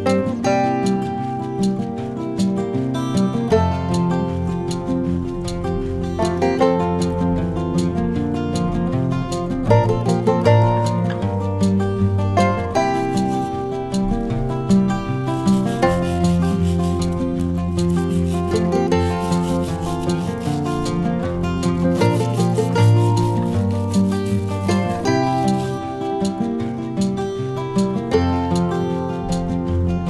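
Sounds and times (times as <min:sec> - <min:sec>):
acoustic guitar music: 0:00.0 - 0:30.0
brush scrubbing lemon peel: 0:12.7 - 0:13.9, 0:15.3 - 0:25.9.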